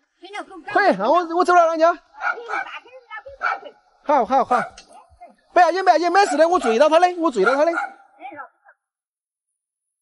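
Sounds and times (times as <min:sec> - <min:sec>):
voices: 0:00.2 - 0:08.9
dog barking: 0:02.2 - 0:02.8, 0:03.4 - 0:03.8, 0:04.5 - 0:04.8, 0:06.2 - 0:08.2.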